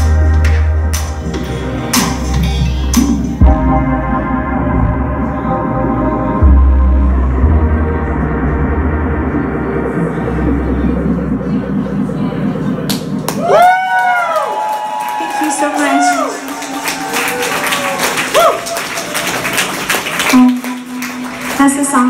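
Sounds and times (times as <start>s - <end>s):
electronic synthesizer music: 0.0s - 22.0s.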